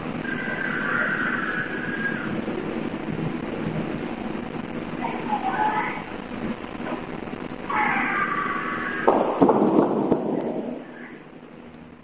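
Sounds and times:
harsh noisy burst with sharp cracks: 0.0 - 12.0
animal's high wavering scream: 0.2 - 2.4, 7.7 - 9.1.

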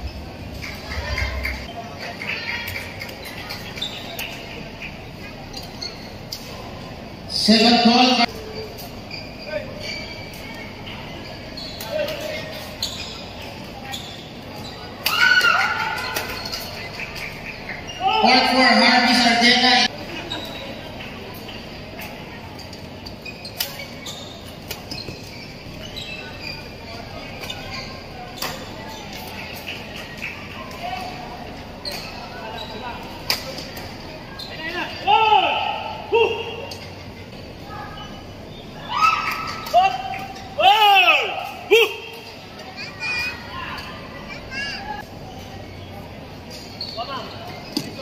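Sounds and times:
loud shouting voices: 17.9 - 19.9, 34.8 - 36.7.

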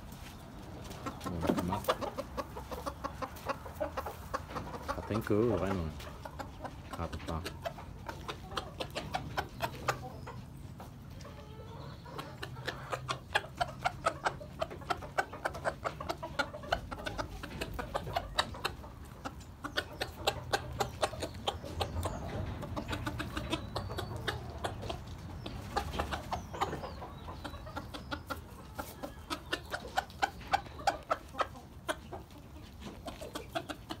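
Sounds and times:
chicken clucking: 0.0 - 34.0.

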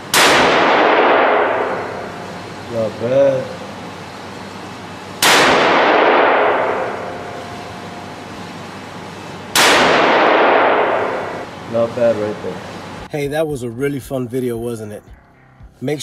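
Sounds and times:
rifle shots echoing: 0.0 - 2.5, 5.2 - 7.6, 9.5 - 11.5.

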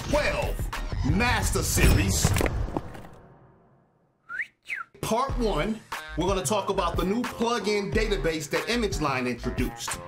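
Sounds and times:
background music: 0.0 - 2.6, 4.9 - 10.0
two-note whistle: 4.2 - 5.0.

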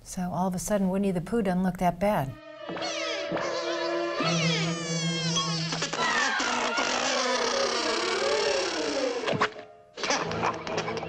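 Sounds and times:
cartoon music: 2.4 - 9.4.

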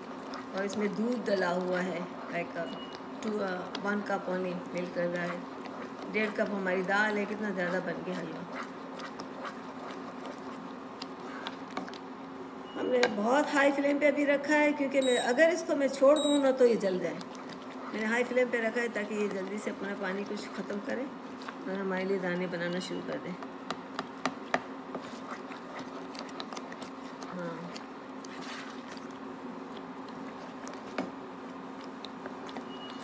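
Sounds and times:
spoon stirring thick mixture: 0.0 - 12.7, 15.0 - 33.0
steady low hum: 0.0 - 33.0
cooking mixture clicks and pops: 2.6 - 7.8, 8.6 - 12.4, 23.3 - 28.3, 29.0 - 33.0.

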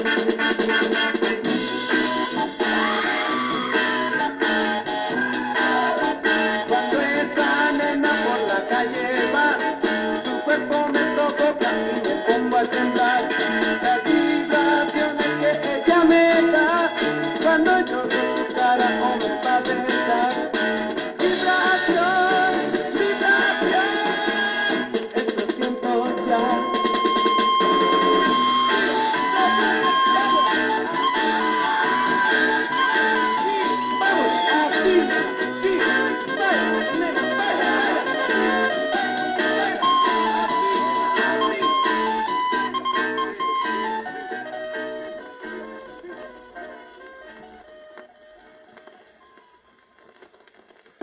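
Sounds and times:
garage rock on a record player: 0.0 - 51.0.

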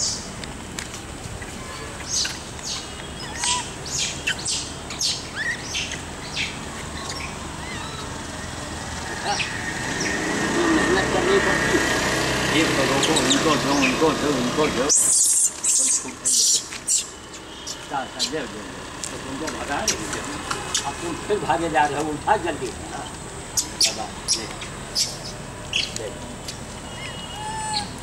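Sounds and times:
birds chirping: 1.4 - 28.0.

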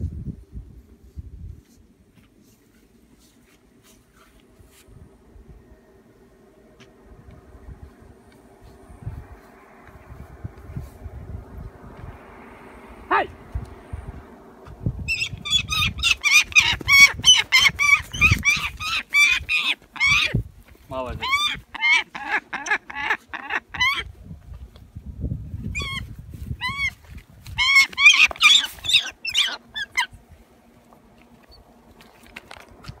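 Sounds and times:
hawk calling: 15.1 - 20.4, 21.2 - 24.1, 26.6 - 30.2.

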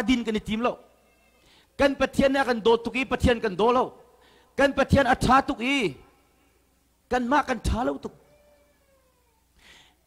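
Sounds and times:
man breathing in: 9.6 - 10.0.

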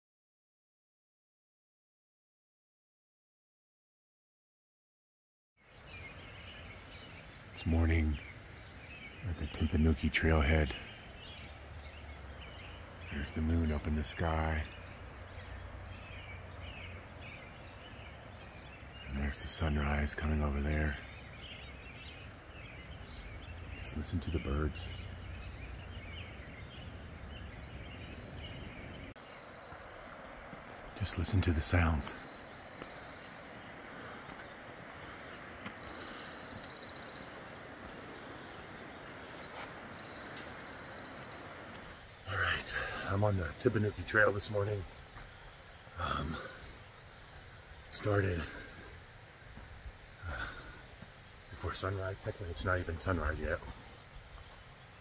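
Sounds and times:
distant bird chirps: 5.6 - 55.0
songbird trilling: 5.6 - 55.0
steady background hiss: 5.7 - 55.0
mountain stream rushing: 28.2 - 55.0.

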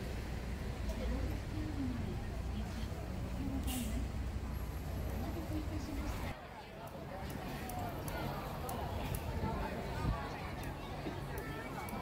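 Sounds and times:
bus engine rumbling: 0.0 - 6.4
passers-by talking: 0.0 - 12.0.

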